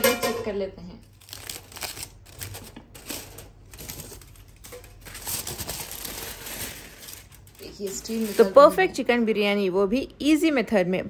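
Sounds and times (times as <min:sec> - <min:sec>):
aluminium foil crinkling: 0:01.0 - 0:09.1.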